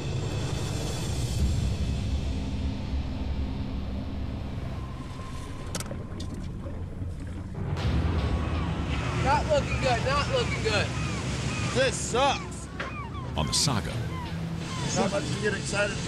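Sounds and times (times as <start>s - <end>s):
boat engine rumble: 1.4s - 16.0s
sea wash: 4.5s - 16.0s.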